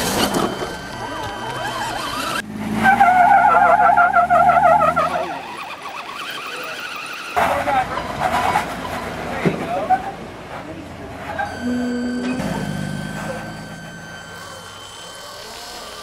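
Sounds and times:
wavering high squeal: 0:00.0 - 0:08.0, 0:11.2 - 0:16.0
off-road vehicle engine running: 0:00.0 - 0:16.0.

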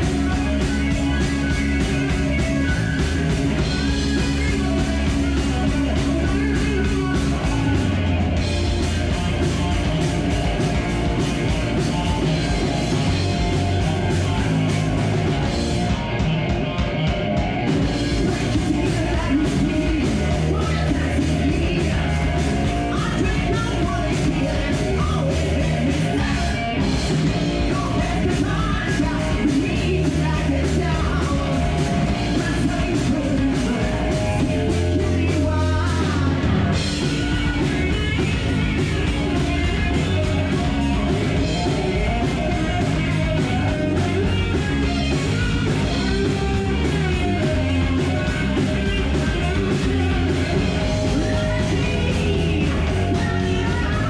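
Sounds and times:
bass guitar: 0:00.0 - 0:54.0
distorted electric guitar: 0:00.0 - 0:54.0
drum kit: 0:00.0 - 0:54.0
heavy metal band playing: 0:00.0 - 0:54.0.

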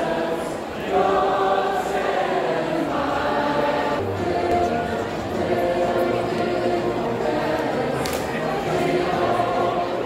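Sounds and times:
crowd singing in unison: 0:00.0 - 0:10.0.

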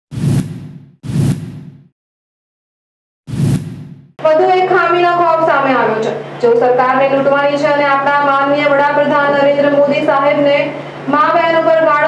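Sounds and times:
whoosh with low boom: 0:00.1 - 0:01.9, 0:03.3 - 0:04.2.

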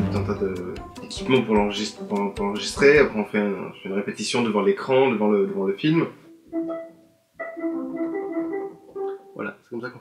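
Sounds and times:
electronic keyboard chords: 0:06.5 - 0:09.4.

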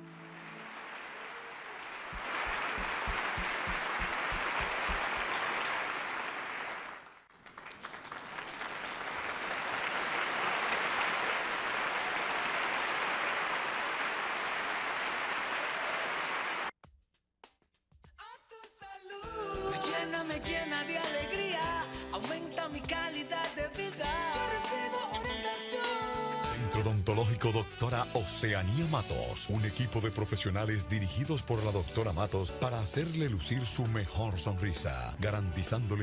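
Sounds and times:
audience applauding: 0:00.0 - 0:16.7
person singing ballad: 0:18.6 - 0:27.8.

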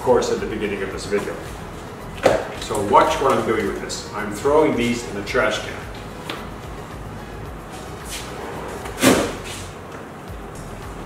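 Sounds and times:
trash can banging: 0:02.2 - 0:03.7, 0:08.7 - 0:09.6
light scrape: 0:07.7 - 0:09.7.

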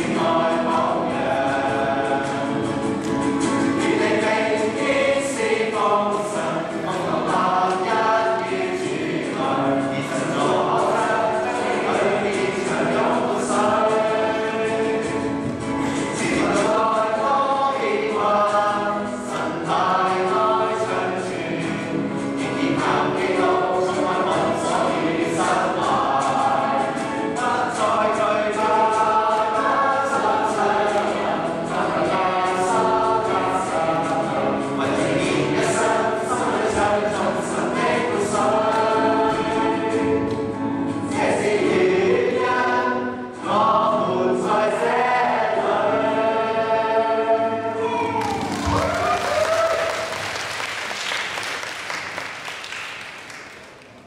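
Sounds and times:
group singing a worship song: 0:00.0 - 0:50.7.

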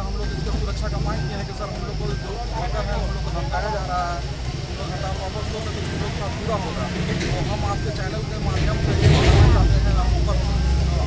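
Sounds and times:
low rumble with hiss: 0:00.0 - 0:11.0
men talking in crowd: 0:00.0 - 0:11.0.

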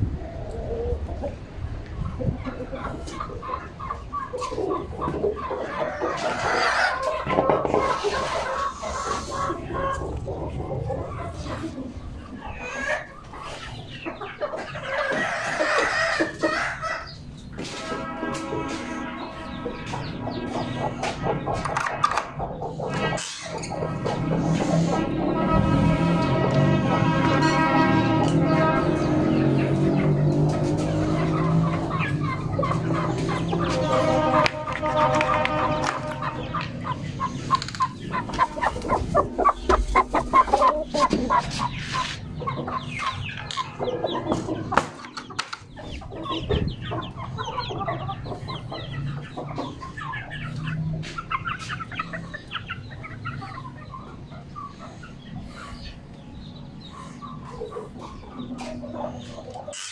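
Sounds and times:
chickens clucking and chicks cheeping: 0:00.0 - 0:59.9.

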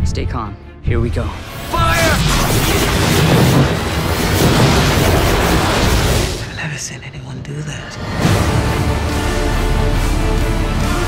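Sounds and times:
rumbling explosion: 0:01.6 - 0:06.8.

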